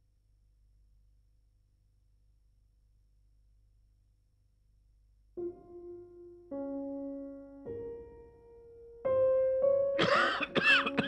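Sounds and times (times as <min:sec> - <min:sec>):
soft piano music: 0:05.4 - 0:11.0
man coughing: 0:10.0 - 0:11.0.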